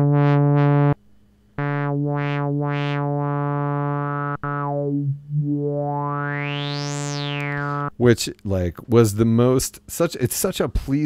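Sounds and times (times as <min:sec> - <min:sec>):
synthesizer filter sweep: 0:00.0 - 0:01.0, 0:01.6 - 0:08.0.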